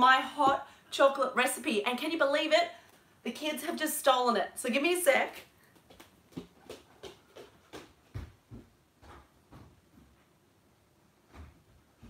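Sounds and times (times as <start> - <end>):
quick footsteps on floor: 5.6 - 10.4.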